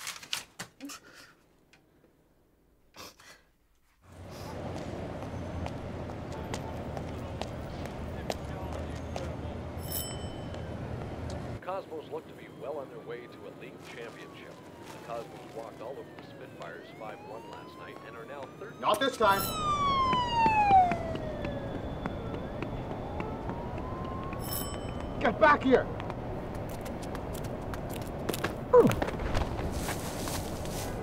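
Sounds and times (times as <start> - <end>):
low street hum: 4.0 - 31.0
siren wailing: 4.1 - 26.0
steady background noise: 4.1 - 31.0
shop door bell ringing: 9.7 - 11.0, 19.3 - 19.8, 24.4 - 25.3.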